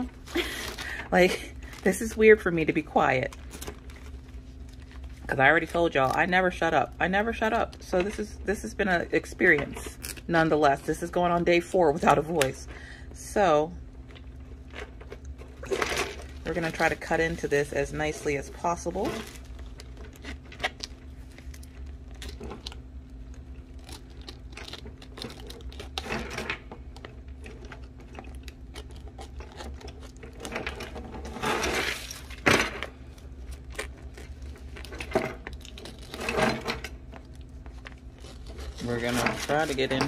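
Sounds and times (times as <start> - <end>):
plastic rustling and crinkling: 0.0 - 7.9, 14.0 - 40.0
low steady hum: 0.0 - 40.0.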